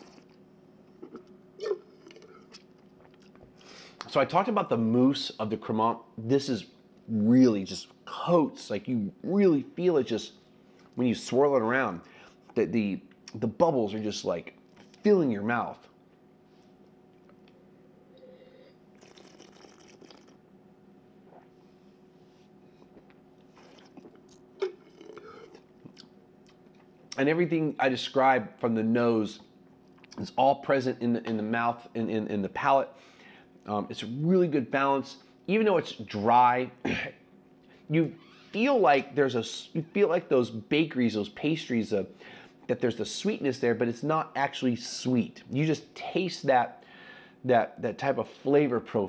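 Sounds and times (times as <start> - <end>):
mouth tasting sounds: 0.0 - 4.1, 18.1 - 20.4, 22.8 - 27.2.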